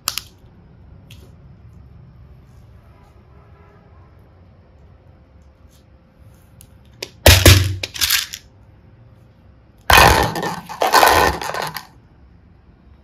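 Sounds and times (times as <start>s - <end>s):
plastic containers clattering into bowl: 9.9s - 11.9s.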